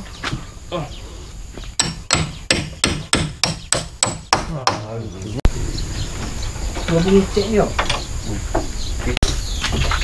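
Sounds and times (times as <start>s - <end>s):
hammer striking wood: 1.8s - 5.0s.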